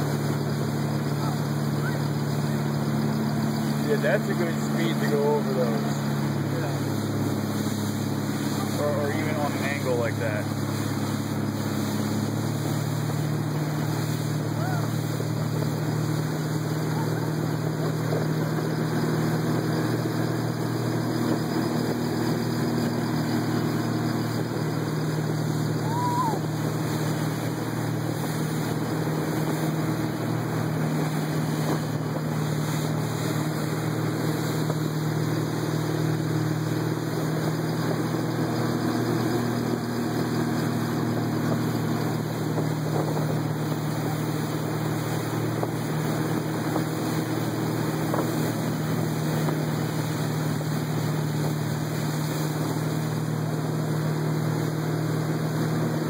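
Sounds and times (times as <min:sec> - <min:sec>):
motorboat engine running: 0:00.0 - 0:56.0
water rushing: 0:00.0 - 0:56.0
wind: 0:00.0 - 0:56.0.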